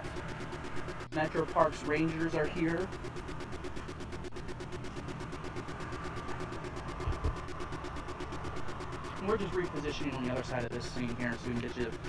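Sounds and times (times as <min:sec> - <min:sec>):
vehicle engine running: 0:00.0 - 0:12.0
man talking: 0:09.2 - 0:12.0.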